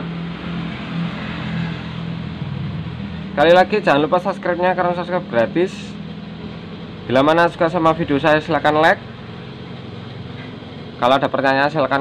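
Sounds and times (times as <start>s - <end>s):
two-stroke engine idling: 2.0s - 12.0s.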